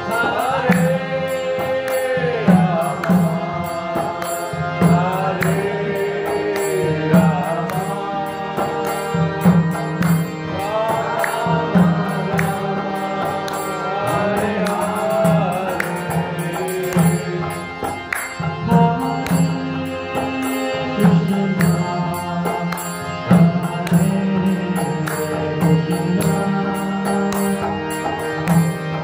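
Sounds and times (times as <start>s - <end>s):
men chanting: 0.0s - 9.2s
harmonium: 0.0s - 29.0s.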